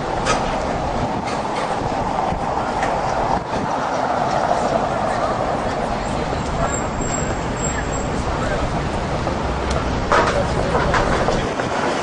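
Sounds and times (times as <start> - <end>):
indistinct voices: 0.0 - 12.0
traffic: 0.0 - 12.0.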